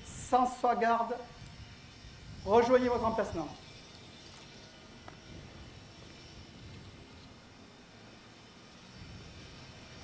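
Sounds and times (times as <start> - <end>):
faint open-air background: 0.0 - 10.0.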